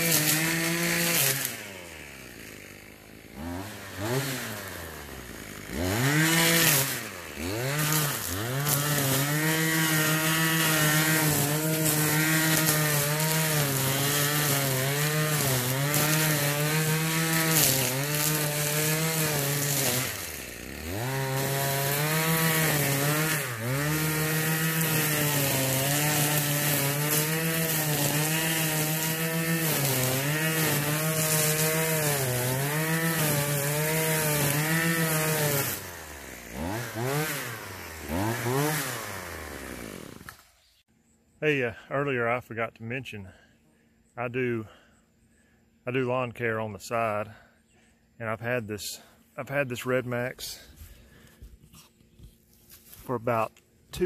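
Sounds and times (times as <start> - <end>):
string trimmer engine revving: 0.0 - 40.8, 48.2 - 54.0.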